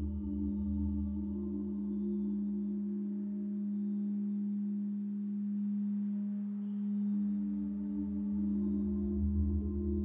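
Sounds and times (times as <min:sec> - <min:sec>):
singing bowl drone: 0:00.0 - 0:10.0.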